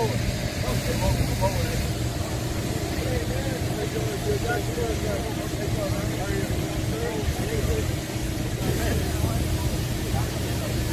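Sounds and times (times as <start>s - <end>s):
machinery rumble and hum: 0.0s - 10.9s
people talking: 0.0s - 10.9s.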